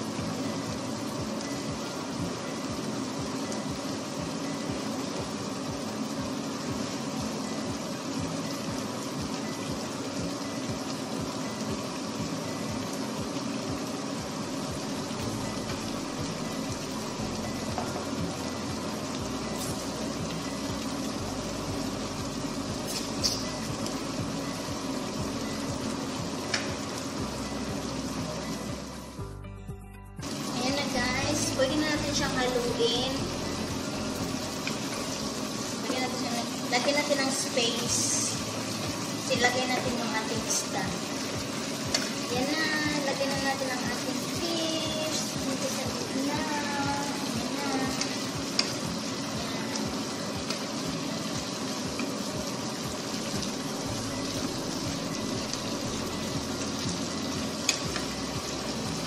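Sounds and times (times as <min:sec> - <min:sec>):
sauce bubbling and sizzling: 0:00.0 - 0:29.6, 0:30.2 - 0:59.0.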